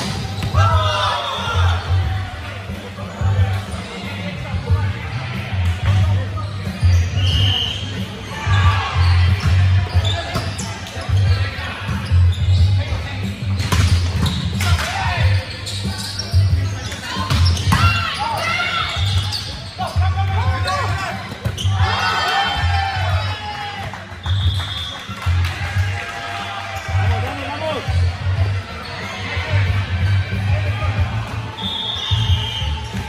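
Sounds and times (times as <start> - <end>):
players shouting: 0.0 - 3.2, 7.2 - 12.0, 16.9 - 24.1.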